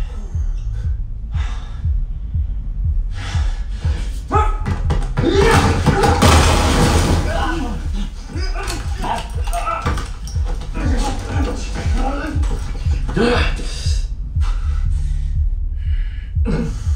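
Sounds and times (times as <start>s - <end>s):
hits and crashes: 5.2s - 8.0s
grunts of effort: 7.2s - 14.0s.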